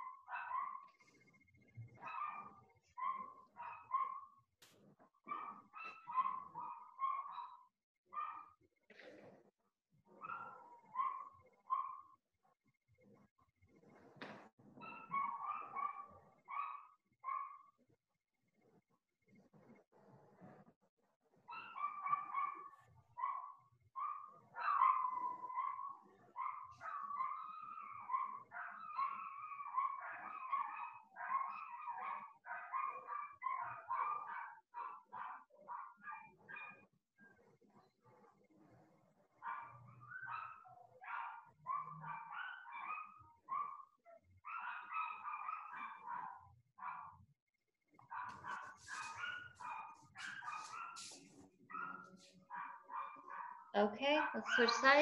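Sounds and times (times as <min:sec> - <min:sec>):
dogs crying high-pitched: 0:21.6 - 0:36.7, 0:51.7 - 0:55.0.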